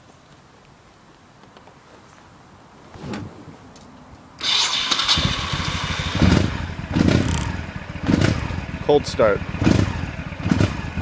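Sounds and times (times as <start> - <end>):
motorcycle engine starting and revving: 4.4 - 11.0.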